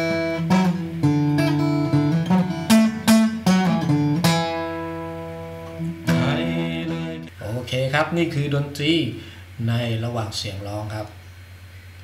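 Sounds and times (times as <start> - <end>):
acoustic guitar chord ringing: 0.0 - 7.3
man speaking: 6.1 - 11.2.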